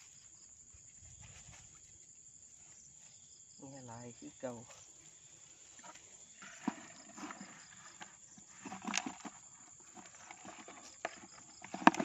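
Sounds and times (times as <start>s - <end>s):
faint insect chirring: 0.0s - 12.0s.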